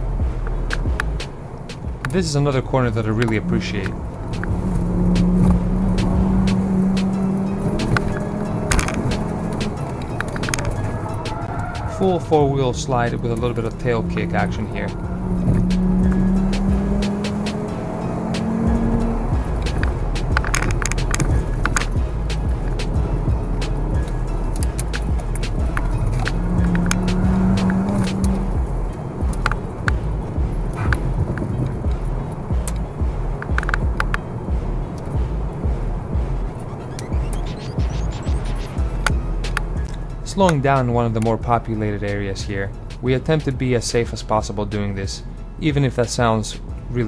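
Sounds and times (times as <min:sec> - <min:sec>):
background music: 0:00.0 - 0:47.0
car engine and road noise: 0:00.0 - 0:47.0.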